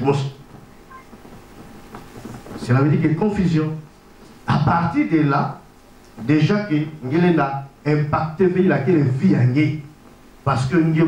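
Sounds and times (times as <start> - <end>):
man speaking through microphone: 0.0 - 0.4, 2.6 - 3.9, 4.5 - 11.0
faint brief tone: 0.9 - 1.1.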